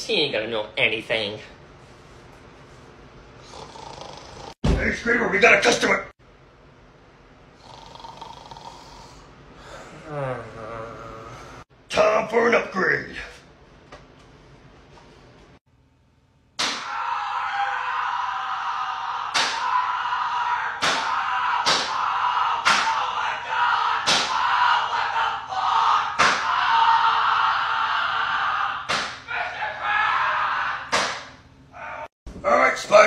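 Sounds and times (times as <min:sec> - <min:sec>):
sharp slap-like cracks: 0:16.6 - 0:16.9, 0:19.3 - 0:19.6, 0:20.8 - 0:22.0, 0:22.6 - 0:23.0, 0:24.0 - 0:24.4, 0:26.2 - 0:26.5, 0:28.9 - 0:29.3, 0:30.9 - 0:31.4.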